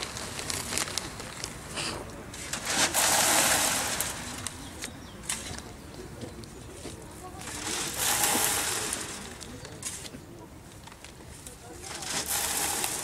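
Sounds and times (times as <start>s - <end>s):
rushing scrape of moving soil: 1.7s - 4.7s, 7.4s - 10.0s, 11.8s - 13.0s
garden tools scraping dry soil: 1.8s - 5.6s, 7.4s - 10.1s, 11.8s - 13.0s.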